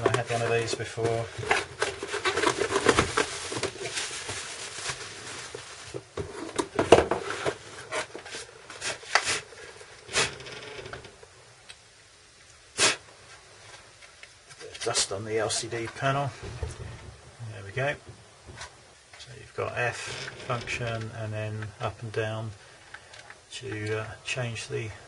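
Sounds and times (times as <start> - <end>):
cardboard and plastic rustling: 0.0 - 11.1.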